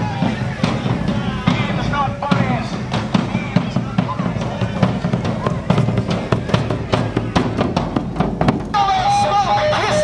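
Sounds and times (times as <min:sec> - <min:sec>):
crowd voices: 0:00.0 - 0:10.0
marching drums: 0:00.0 - 0:10.0.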